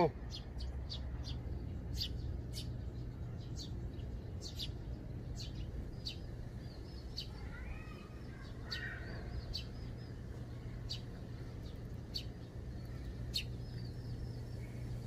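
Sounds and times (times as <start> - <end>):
low steady hum: 0.0 - 15.0
sparrows chirping: 0.0 - 15.0.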